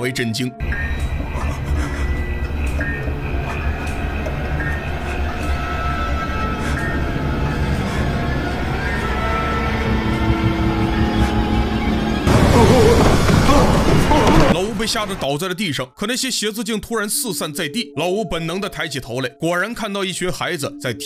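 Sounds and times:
high held tones: 0.6 - 12.3
low rumbling drone: 0.6 - 14.8.

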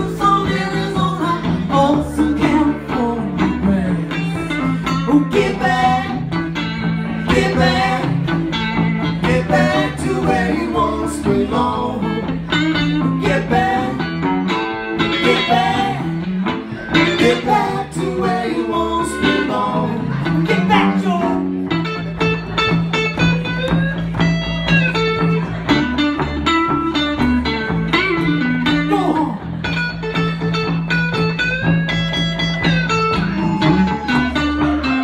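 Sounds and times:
woman singing: 0.0 - 4.4, 5.1 - 6.2, 15.2 - 16.0
electric guitars: 0.0 - 35.0
steady low bass line: 0.0 - 35.0.

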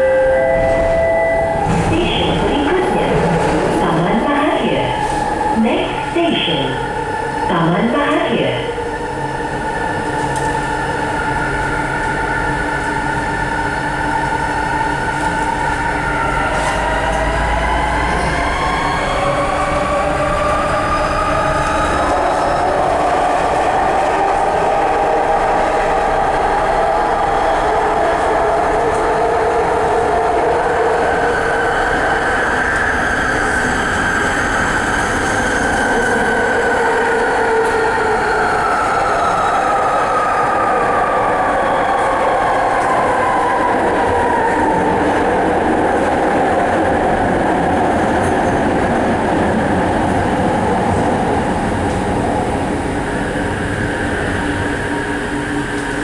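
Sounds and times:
train rolling noise: 0.0 - 56.0.

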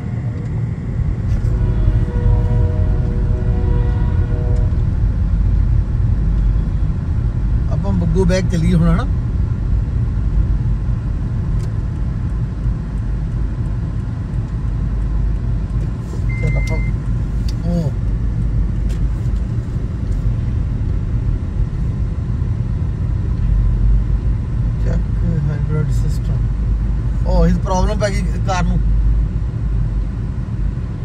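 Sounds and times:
short high beep: 16.2 - 17.0.

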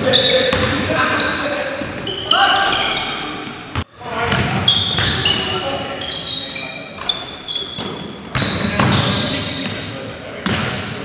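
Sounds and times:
sneakers squeaking on floor: 0.0 - 11.0
basketball bouncing: 0.5 - 0.8, 7.8 - 9.2.

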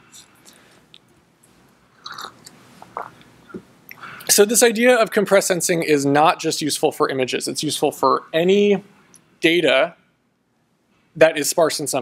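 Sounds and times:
soft mouth noises: 0.0 - 4.3.

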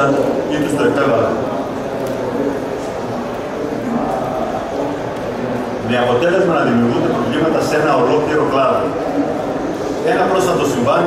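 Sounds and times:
murmur of voices in hall: 0.0 - 11.0.

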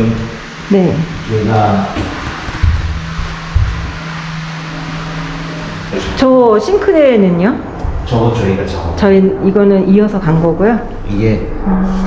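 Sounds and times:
background music with low note: 0.0 - 12.0
low thumps: 0.0 - 12.0.

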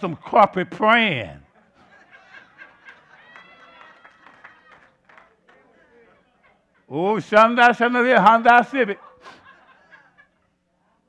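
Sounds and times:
person preaching: 0.0 - 1.5, 6.9 - 9.0
soft laughter: 1.5 - 3.7, 9.0 - 10.7.

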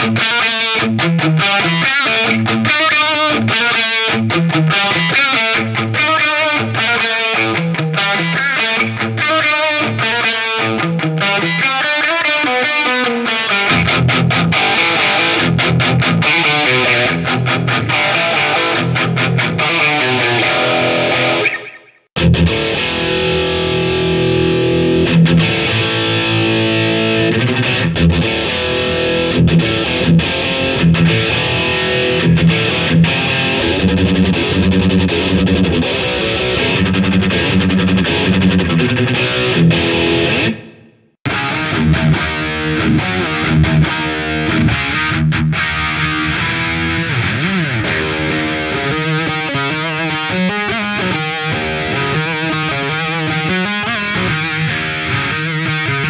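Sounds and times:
distorted electric guitar riffs: 0.0 - 56.0.

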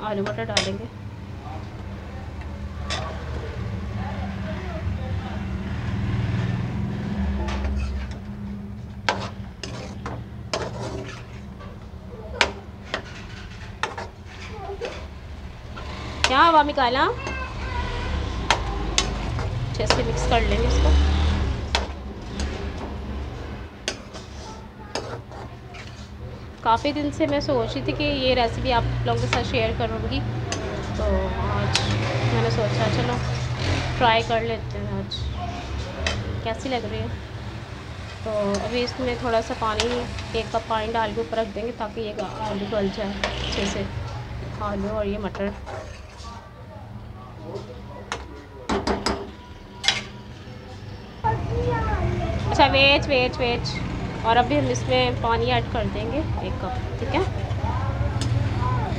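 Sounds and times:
metal spoon stirring food in pan: 5.4 - 46.5.

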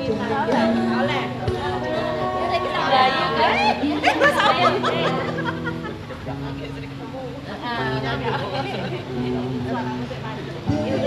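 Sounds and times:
live guitar music: 0.0 - 11.0
people chattering excitedly: 0.0 - 11.0.

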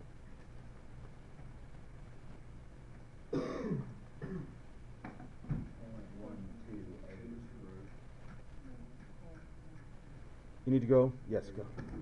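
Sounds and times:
faint low hum: 0.0 - 12.0
person clearing throat: 3.4 - 4.6.

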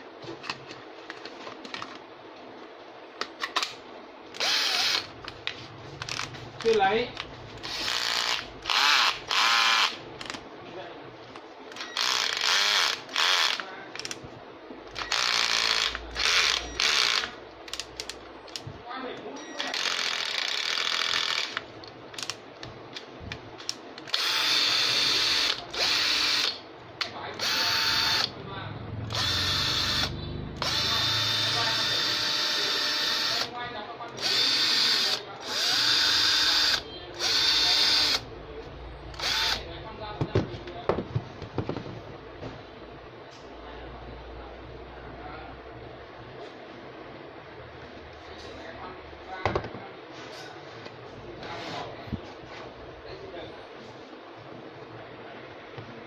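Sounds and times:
cordless drill motor whine: 4.4 - 5.1, 7.6 - 10.0, 11.8 - 13.6, 15.0 - 17.3, 24.1 - 26.6, 27.4 - 28.3, 29.1 - 33.5, 34.2 - 38.2, 39.1 - 39.6.

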